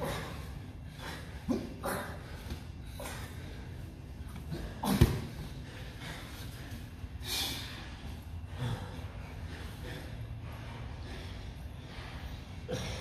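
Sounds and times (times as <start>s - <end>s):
people breathing hard: 0.0s - 13.0s.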